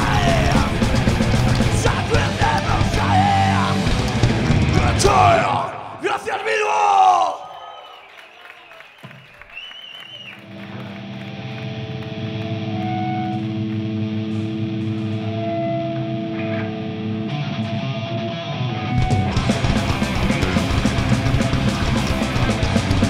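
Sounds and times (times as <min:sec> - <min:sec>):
person shouting vocal line: 0:01.8 - 0:03.8, 0:04.8 - 0:07.5
distorted electric guitar chord: 0:10.5 - 0:23.0.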